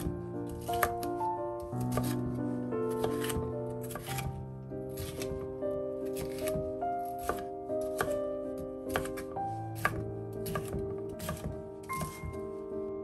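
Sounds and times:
knife slicing on cutting board: 0:00.0 - 0:01.0, 0:01.8 - 0:05.4, 0:06.0 - 0:08.2, 0:08.9 - 0:12.4
background music with held notes: 0:00.0 - 0:13.0.

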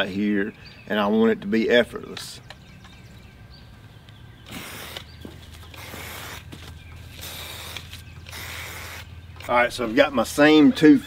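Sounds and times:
spray paint hissing: 0:04.5 - 0:09.1
footsteps: 0:05.2 - 0:08.1.

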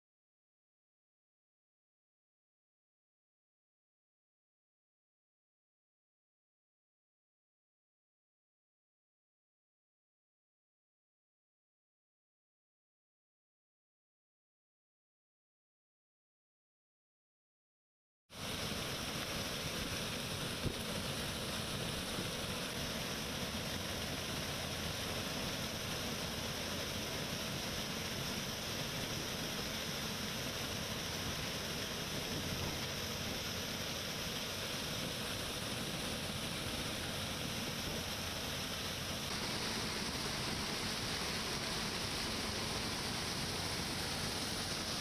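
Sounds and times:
combine harvester running: 0:18.4 - 0:45.0.

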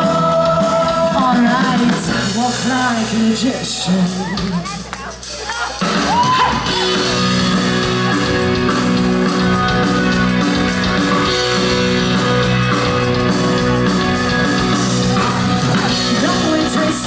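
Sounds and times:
live band instrumental: 0:00.0 - 0:17.0
electric guitar sustained notes: 0:06.6 - 0:17.0.

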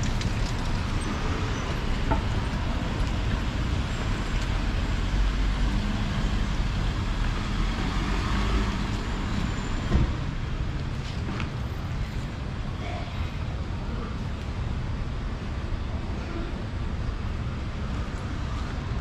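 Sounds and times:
cars passing: 0:00.0 - 0:12.2.

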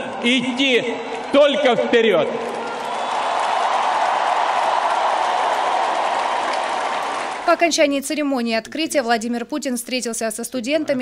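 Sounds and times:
crowd applauding: 0:00.0 - 0:07.7.

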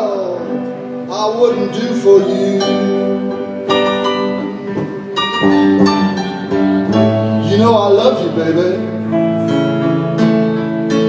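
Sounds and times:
person singing: 0:00.0 - 0:09.2
electric guitar ringing notes: 0:00.0 - 0:11.0
keyboard backing: 0:00.0 - 0:11.0.

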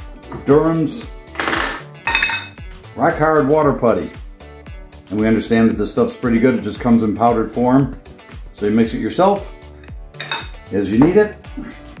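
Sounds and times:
metal lid scraping and clinking: 0:01.4 - 0:02.6, 0:09.8 - 0:10.6.

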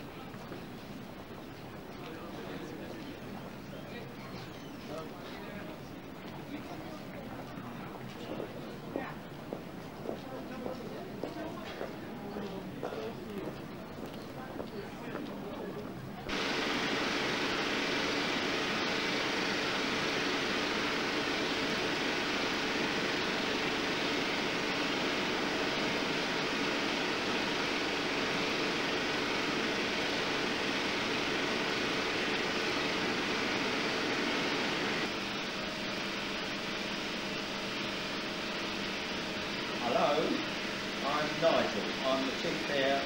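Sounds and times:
projector machinery whirring: 0:16.1 - 0:43.0.

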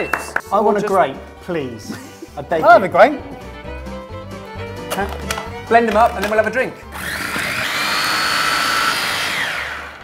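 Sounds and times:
blenders motor whine: 0:06.9 - 0:10.0.

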